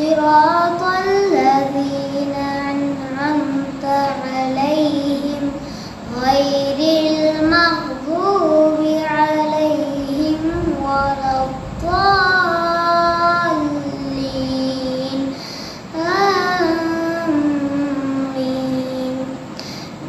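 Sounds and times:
boy chanting melodically: 0:00.0 - 0:20.0.

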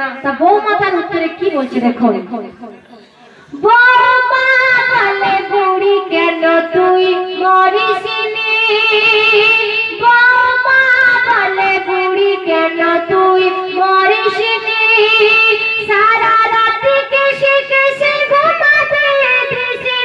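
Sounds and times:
woman singing into a microphone: 0:03.5 - 0:20.0.

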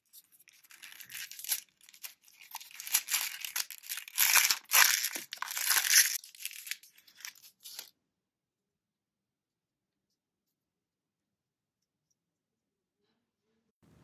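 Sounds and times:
paper wrapper crinkling: 0:00.0 - 0:07.9.

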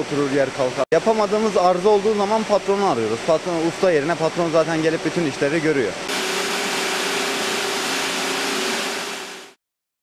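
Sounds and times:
knitting machines running: 0:06.1 - 0:09.6.

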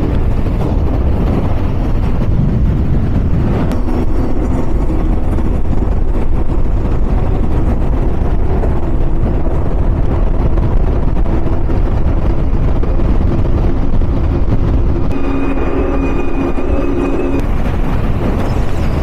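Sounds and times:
boat engine drone: 0:00.0 - 0:19.0.

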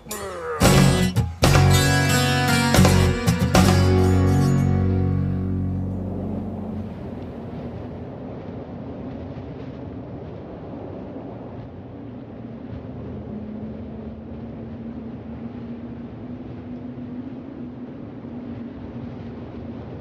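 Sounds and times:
low rumbling noise: 0:00.0 - 0:20.0
acoustic guitar chord: 0:00.1 - 0:07.4
faint hum: 0:04.0 - 0:09.2.

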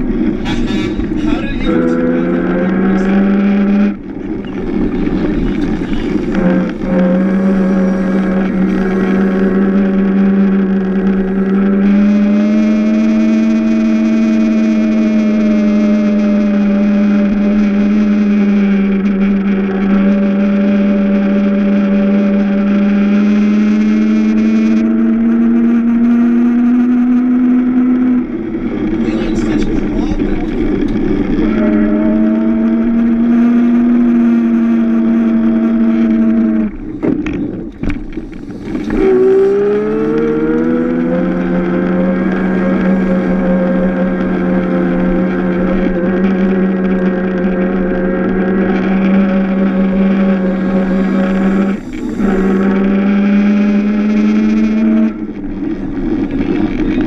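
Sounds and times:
electric kart motor whine: 0:00.0 - 0:57.0.

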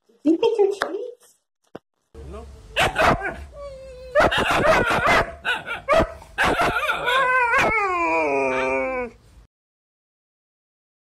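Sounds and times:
dog howling: 0:02.7 - 0:04.8, 0:06.5 - 0:09.2
dog barking: 0:02.8 - 0:03.5, 0:04.2 - 0:07.7.

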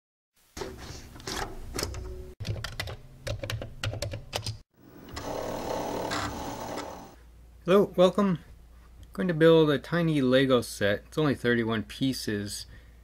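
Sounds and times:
floppy disk drive whirring: 0:04.9 - 0:07.2.

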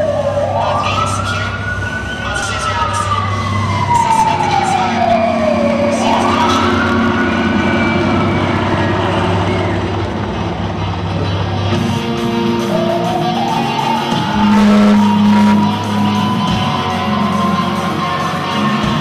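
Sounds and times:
siren wailing: 0:00.0 - 0:10.2, 0:12.6 - 0:17.1
crowd noise: 0:14.1 - 0:16.7
steady low hum: 0:14.3 - 0:15.8.

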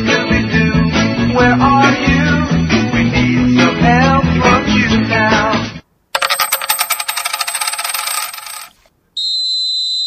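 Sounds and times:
bright metallic clinks: 0:06.2 - 0:08.8.

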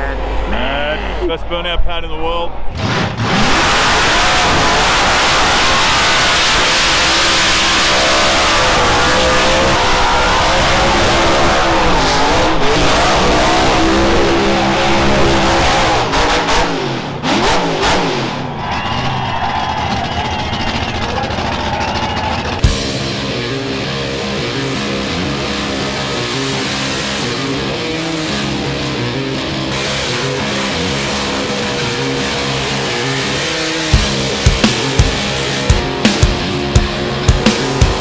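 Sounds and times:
car engine revving high: 0:02.6 - 0:38.0.

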